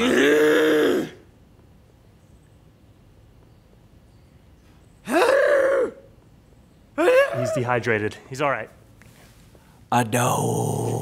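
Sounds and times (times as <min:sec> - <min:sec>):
man's strangled vocal noise: 0:00.0 - 0:01.2.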